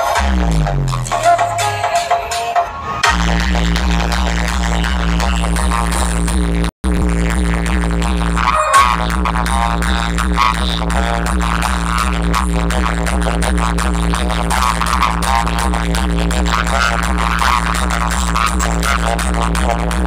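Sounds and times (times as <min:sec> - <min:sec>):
electronic dance music: 0:00.0 - 0:06.4, 0:08.2 - 0:09.2
heavy bass beat: 0:00.0 - 0:20.0.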